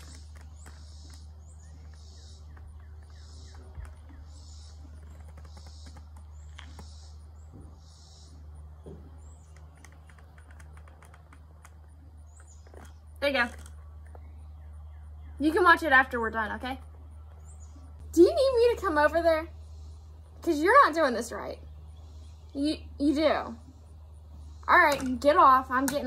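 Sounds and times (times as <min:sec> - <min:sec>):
steady low hum: 0:00.0 - 0:26.0
faint clicks: 0:09.4 - 0:14.3.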